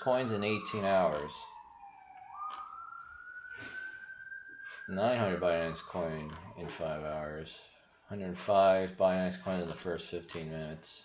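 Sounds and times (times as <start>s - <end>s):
siren wailing: 0.0s - 7.8s.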